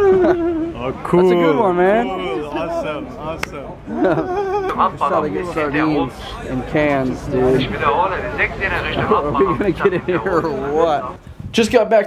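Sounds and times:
crowd and street noise: 0.0 - 12.0.

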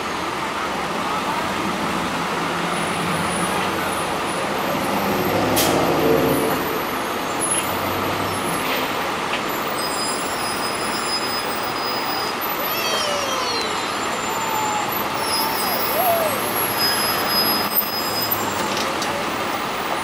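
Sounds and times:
bus diesel engine running: 0.0 - 20.0.

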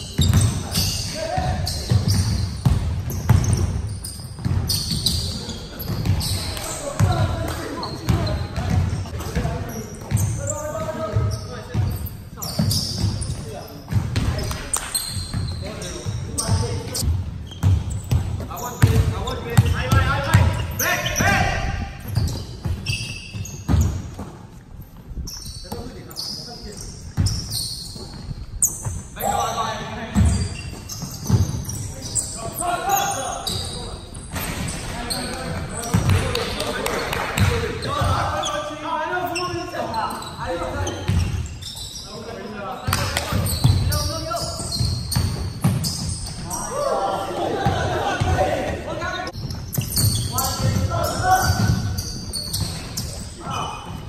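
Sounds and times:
players shouting: 46.4 - 49.3.

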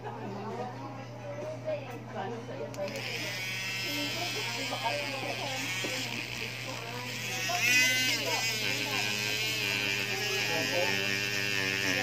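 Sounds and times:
rotary tool motor whine: 2.9 - 12.0.

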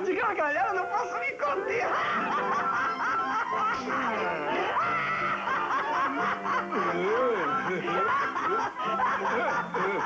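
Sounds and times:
background music: 0.0 - 10.0
cartoon character laughing: 1.9 - 10.0.

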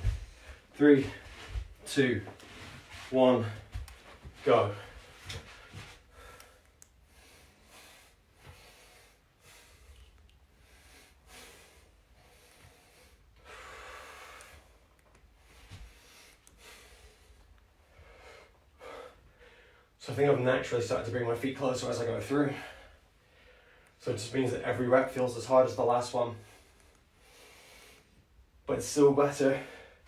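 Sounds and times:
man breathing hard: 4.7 - 20.0, 22.5 - 24.0, 26.4 - 28.3.

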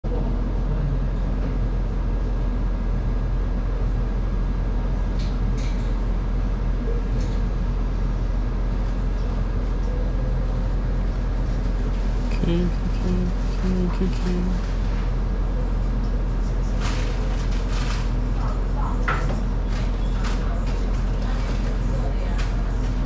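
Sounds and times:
low rumbling hum: 0.0 - 23.0.

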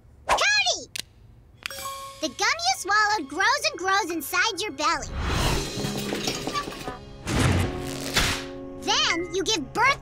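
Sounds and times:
music: 1.7 - 10.0.

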